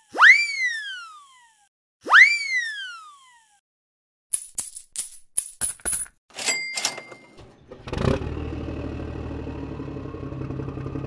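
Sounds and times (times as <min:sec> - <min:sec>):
coin clinks: 0:04.3 - 0:07.4
cash register ding: 0:05.9 - 0:07.7
vehicle engine starting and running: 0:07.0 - 0:11.0.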